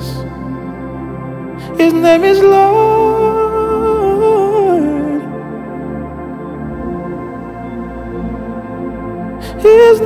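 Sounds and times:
soft keyboard pad: 0.0s - 10.0s.

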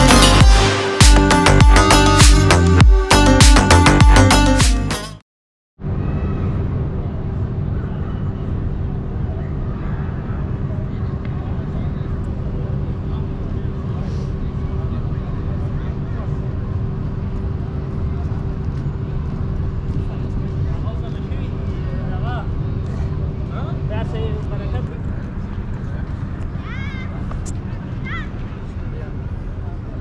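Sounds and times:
low traffic rumble: 5.8s - 30.0s
people talking: 6.4s - 30.0s.

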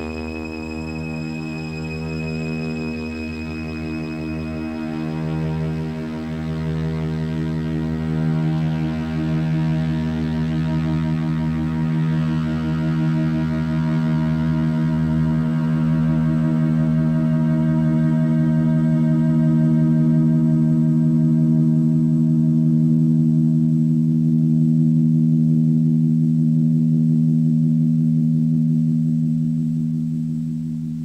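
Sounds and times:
electronic drone: 0.0s - 30.7s
low drone layer: 0.0s - 31.0s.

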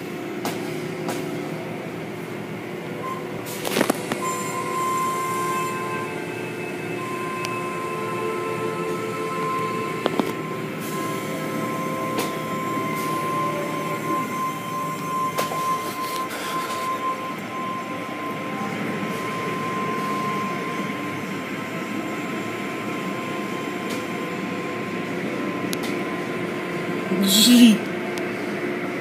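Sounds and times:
machinery noise with high whine: 0.0s - 29.0s.

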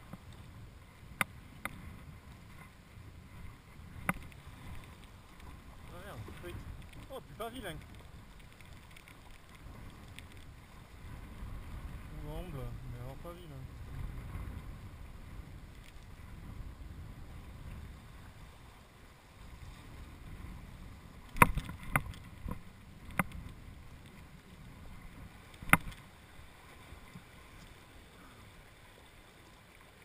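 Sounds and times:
wind rumble on microphone: 0.0s - 29.0s.

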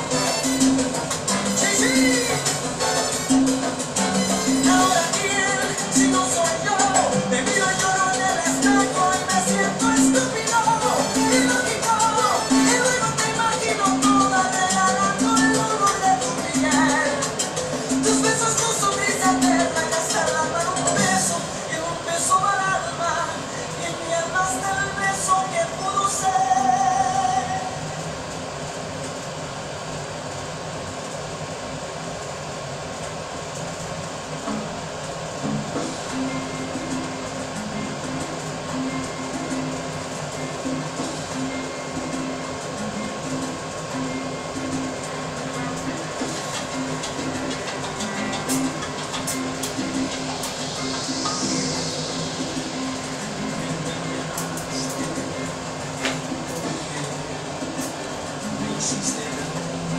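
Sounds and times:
background music: 0.0s - 28.1s, 35.4s - 59.9s.

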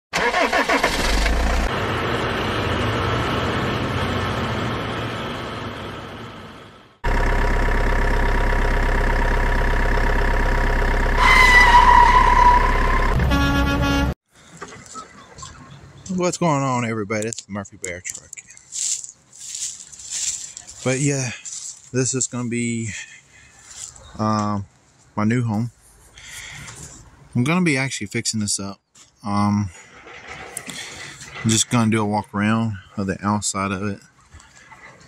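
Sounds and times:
truck engine running: 0.2s - 14.1s
short tone: 11.2s - 14.2s
truck horn blast: 11.2s - 14.2s.

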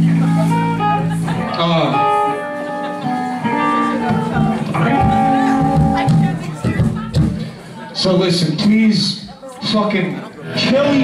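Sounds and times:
electric guitar notes ringing: 0.0s - 6.6s.

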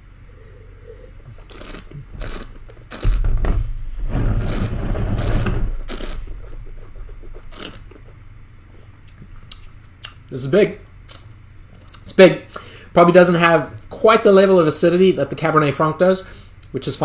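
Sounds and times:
slurping wine: 0.4s - 3.0s.

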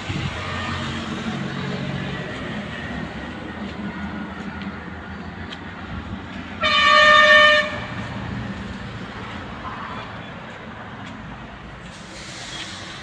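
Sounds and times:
vehicle horn blast: 6.6s - 8.0s.

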